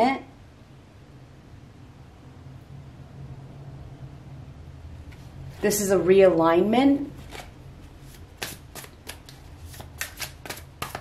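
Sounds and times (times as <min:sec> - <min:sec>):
cards being shuffled: 0:07.1 - 0:11.0.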